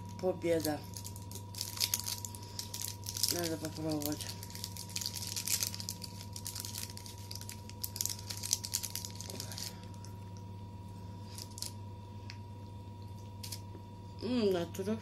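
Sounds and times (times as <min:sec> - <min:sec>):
foil wrapper crinkling: 0:00.0 - 0:10.0, 0:11.2 - 0:11.8
steady hum: 0:00.0 - 0:15.0.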